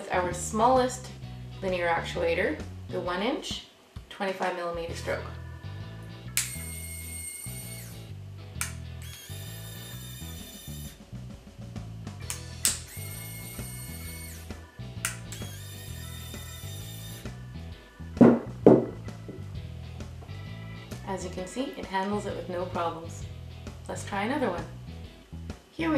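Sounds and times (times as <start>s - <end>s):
background music: 0.0s - 25.9s
small actuator motor running: 6.4s - 8.1s, 9.0s - 11.0s, 12.8s - 17.4s
thumps: 18.2s - 19.5s.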